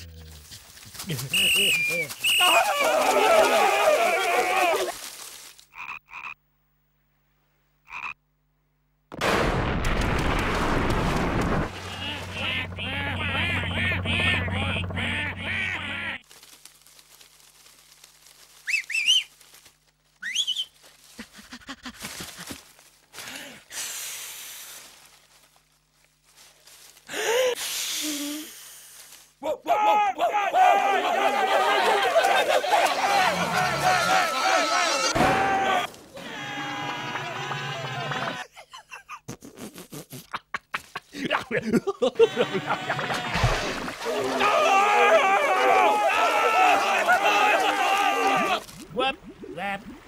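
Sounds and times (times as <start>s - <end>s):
cartoon creatures whooping and yelling: 2.2s - 5.0s, 29.7s - 38.5s, 42.2s - 43.4s, 44.0s - 48.7s
frog croaking: 5.7s - 6.4s, 7.8s - 8.2s.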